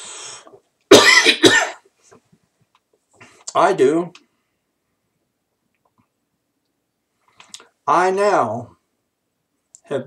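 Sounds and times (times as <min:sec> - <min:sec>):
sharp breath in: 0:00.0 - 0:00.6
man coughing: 0:00.9 - 0:01.9.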